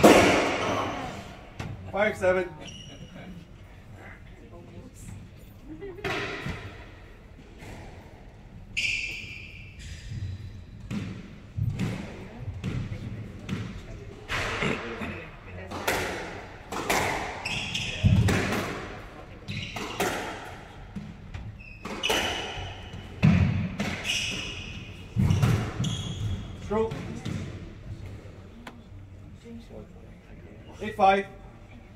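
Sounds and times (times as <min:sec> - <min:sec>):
squash ball hitting rackets and walls: 0:00.0 - 0:01.8, 0:06.0 - 0:08.1, 0:08.8 - 0:14.9, 0:15.6 - 0:28.3
shoes squeaking on wooden floor: 0:17.4 - 0:18.3, 0:21.1 - 0:23.2, 0:23.9 - 0:27.5.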